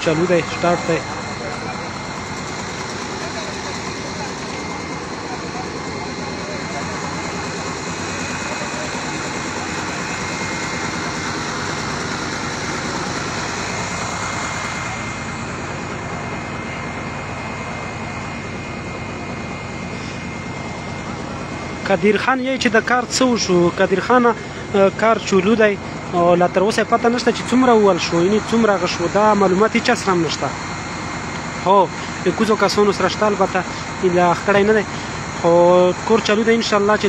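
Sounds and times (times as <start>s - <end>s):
drilling rig engine running: 0.0s - 37.0s.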